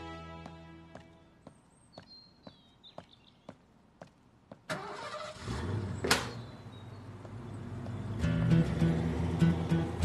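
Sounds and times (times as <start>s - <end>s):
car engine starting and running: 4.7s - 10.0s.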